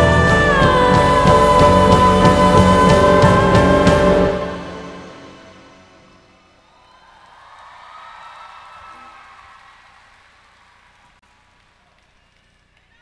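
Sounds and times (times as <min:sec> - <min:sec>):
song notes: 0:00.0 - 0:06.5.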